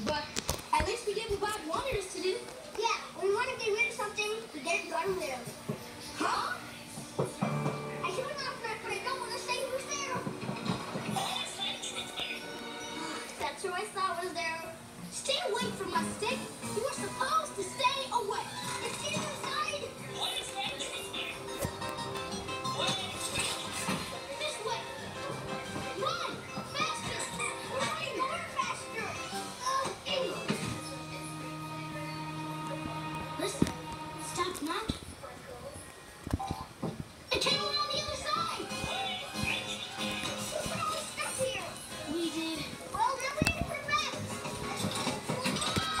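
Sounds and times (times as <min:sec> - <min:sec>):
background music: 0:05.1 - 0:13.9, 0:14.8 - 0:34.9, 0:37.6 - 0:46.0.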